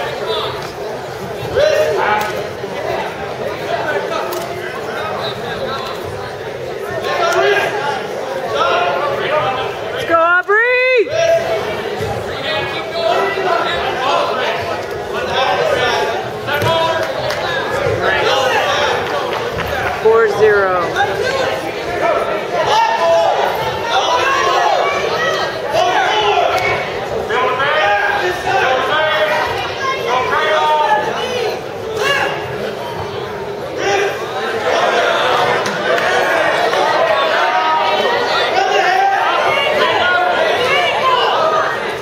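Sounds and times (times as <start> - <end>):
people shouting and talking: 0.0 - 42.0
spectator chatter: 0.0 - 42.0.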